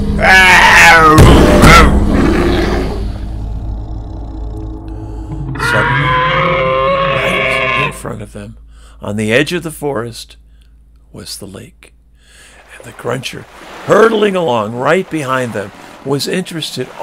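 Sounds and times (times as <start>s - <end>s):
low hum: 0.0s - 15.9s
man growling and roaring: 0.1s - 8.1s.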